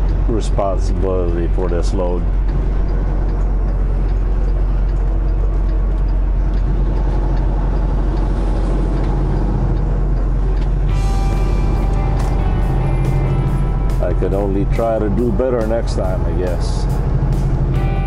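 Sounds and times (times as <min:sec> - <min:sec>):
diesel truck engine running: 0:00.0 - 0:18.0
background music: 0:10.9 - 0:18.0.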